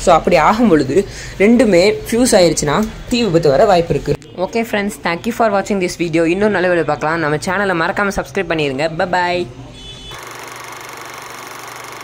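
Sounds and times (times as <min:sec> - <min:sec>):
speech: 0:00.0 - 0:09.8
film projector clatter: 0:10.2 - 0:12.0.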